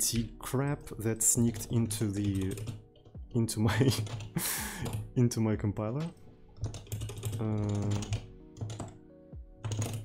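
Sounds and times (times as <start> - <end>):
background music: 0.0 - 10.0
keyboard keystrokes: 1.4 - 3.2, 5.9 - 9.0, 9.6 - 10.0.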